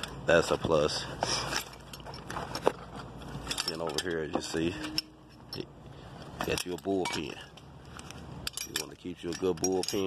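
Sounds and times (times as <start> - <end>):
tool belt gear rustling: 0.0 - 10.0.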